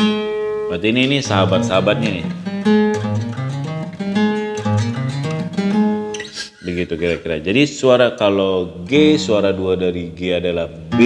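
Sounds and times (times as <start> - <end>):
acoustic guitar chords: 0.0 - 6.4, 8.6 - 10.2, 10.8 - 11.0.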